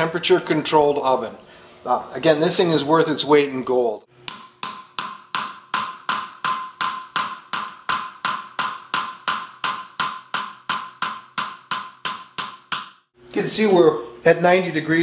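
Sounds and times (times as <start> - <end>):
hammer striking steel blade: 4.2 - 13.1.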